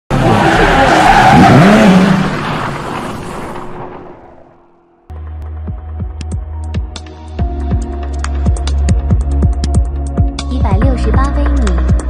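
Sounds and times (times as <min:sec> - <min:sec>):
tyres screeching: 0:00.1 - 0:04.4.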